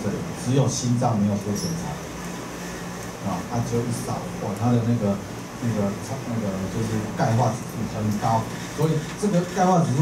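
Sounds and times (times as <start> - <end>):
man lecturing through a microphone: 0.0 - 2.2, 3.2 - 10.0
steady low hum: 0.0 - 10.0.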